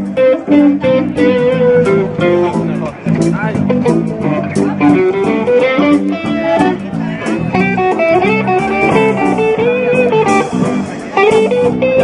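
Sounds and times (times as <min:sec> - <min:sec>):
bass line: 0:00.0 - 0:12.0
guitar melody: 0:00.0 - 0:12.0
steady drum beat: 0:00.0 - 0:12.0.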